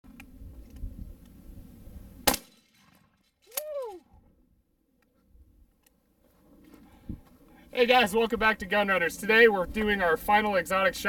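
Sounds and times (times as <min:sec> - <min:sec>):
low wind rumble: 0:00.1 - 0:03.0, 0:06.4 - 0:11.0
shotgun shot: 0:02.2 - 0:03.2.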